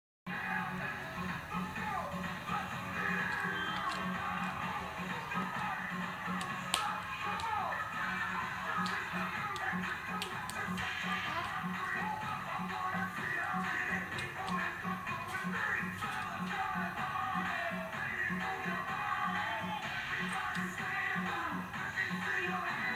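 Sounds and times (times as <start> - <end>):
music from a television: 0.3 - 22.9.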